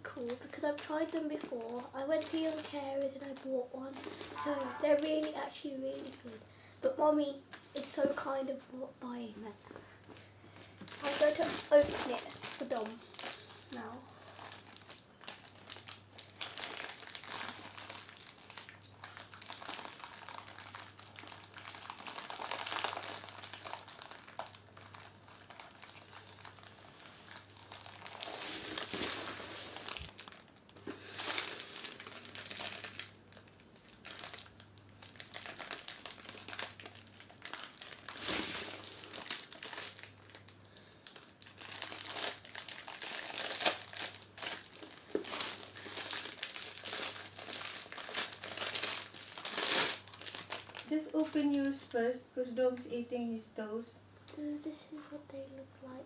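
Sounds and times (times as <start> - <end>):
plastic wrapper crinkling: 0.0 - 6.5, 9.4 - 52.0.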